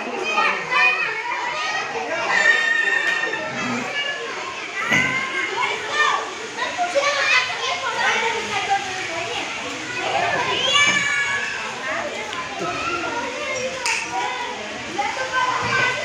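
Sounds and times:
children shouting at play: 0:00.0 - 0:16.0.

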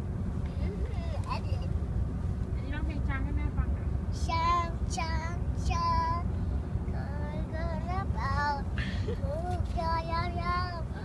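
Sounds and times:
car cabin rumble: 0:00.0 - 0:11.0
young child singing: 0:09.3 - 0:11.0.

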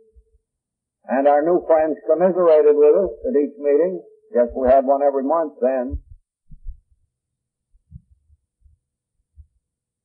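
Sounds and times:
person speaking: 0:01.1 - 0:06.1
faint low thumps: 0:05.7 - 0:07.0.

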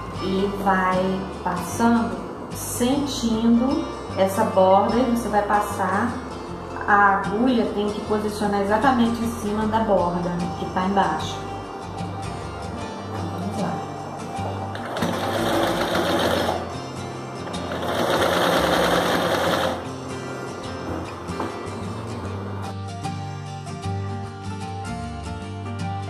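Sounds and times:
background music: 0:00.0 - 0:26.0
sewing machine stitching: 0:14.7 - 0:16.7, 0:17.5 - 0:19.9.

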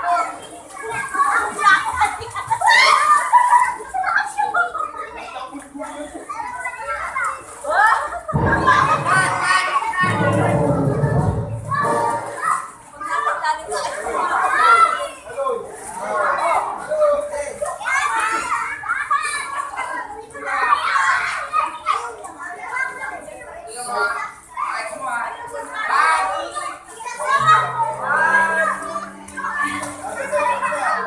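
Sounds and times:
young children chattering and calling: 0:00.0 - 0:31.0.

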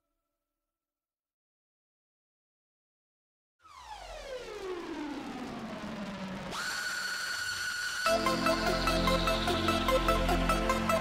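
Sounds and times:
synthesizer tone gliding: 0:03.7 - 0:11.0.

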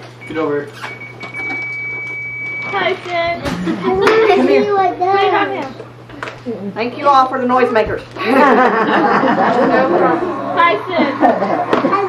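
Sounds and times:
noisemaker toy high-pitched tone: 0:00.3 - 0:03.4.

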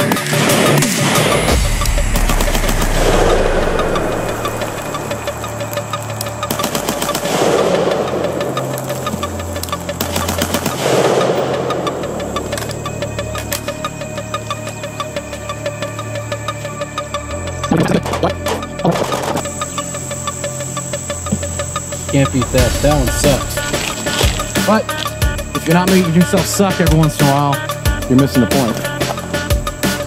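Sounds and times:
background music with deep bass: 0:00.0 - 0:30.0
rifle shots: 0:00.5 - 0:05.5.

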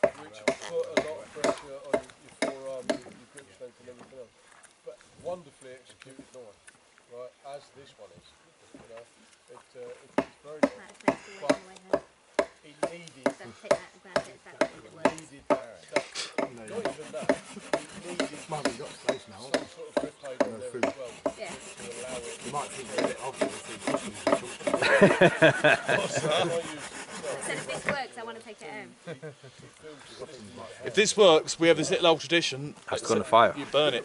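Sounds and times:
knife scraping wood: 0:16.2 - 0:19.7, 0:20.4 - 0:25.0, 0:25.8 - 0:28.0.

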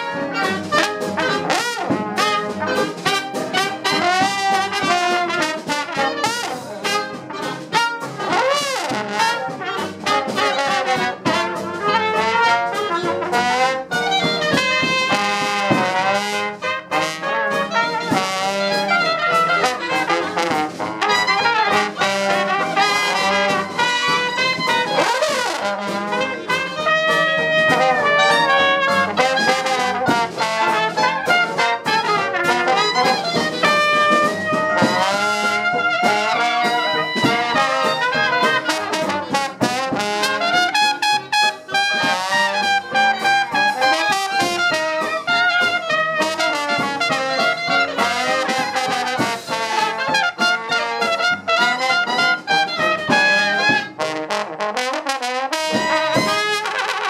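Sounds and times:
banjo: 0:00.0 - 0:57.0
clarinet: 0:00.0 - 0:57.0
drums: 0:00.0 - 0:57.0
jazz band playing: 0:00.0 - 0:57.0
trombone: 0:00.0 - 0:57.0
trumpet: 0:00.0 - 0:57.0.

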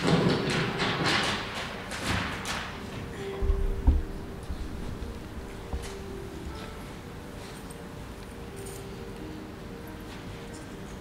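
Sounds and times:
low thumps: 0:03.4 - 0:06.6.

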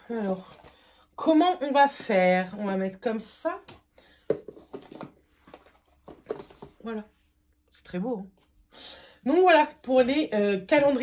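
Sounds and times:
cardboard boxes tapping and knocking: 0:04.2 - 0:06.8.

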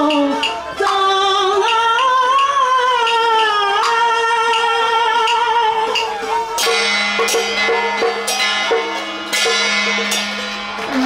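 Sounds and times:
hand cymbals clashing: 0:00.0 - 0:11.0.

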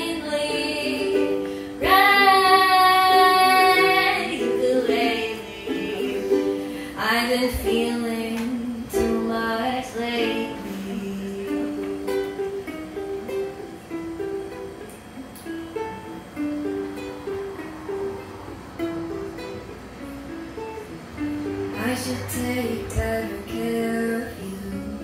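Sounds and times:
ukulele melody: 0:00.0 - 0:25.0.

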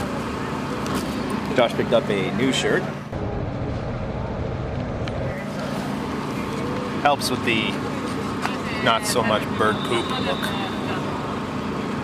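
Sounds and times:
city street rumble: 0:00.0 - 0:12.0.

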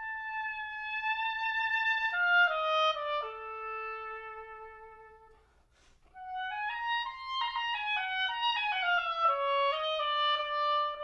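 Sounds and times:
solo oboe playing: 0:00.0 - 0:11.0
short breathy noise: 0:05.3 - 0:06.2.

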